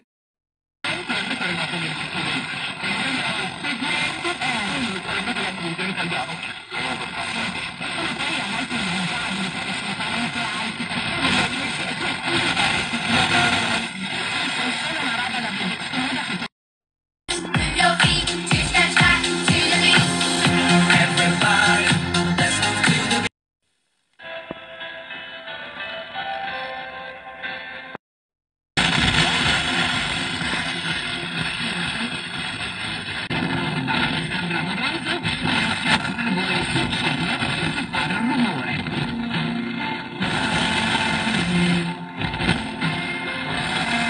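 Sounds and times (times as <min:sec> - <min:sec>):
faint radio audio: 0:00.8 - 0:16.5, 0:28.8 - 0:44.0
radio static hiss: 0:00.8 - 0:16.5, 0:28.8 - 0:44.0.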